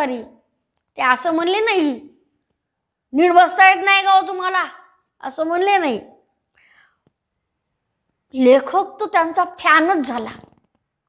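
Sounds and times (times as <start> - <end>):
faint breath: 6.5 - 7.2.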